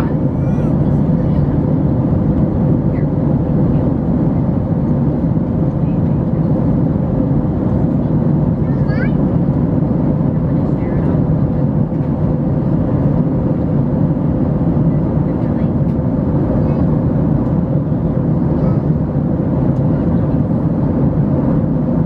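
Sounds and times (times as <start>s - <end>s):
airliner cabin engine rumble: 0.0s - 22.0s.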